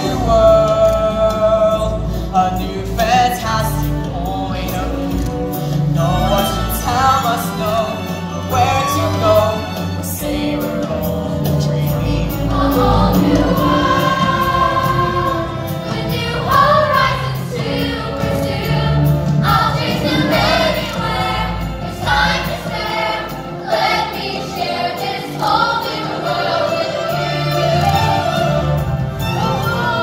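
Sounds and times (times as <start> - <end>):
musical accompaniment: 0.0 - 30.0.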